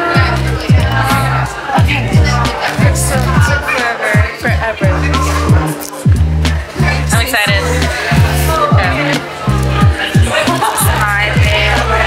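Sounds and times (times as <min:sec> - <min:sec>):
music with sliding bass hits: 0:00.0 - 0:12.0.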